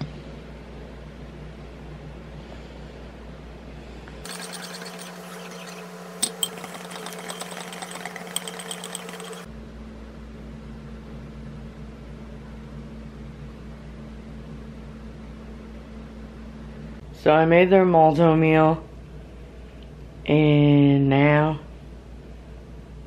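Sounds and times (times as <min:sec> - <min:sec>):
metal whisk clattering against bowl: 0:04.2 - 0:09.5.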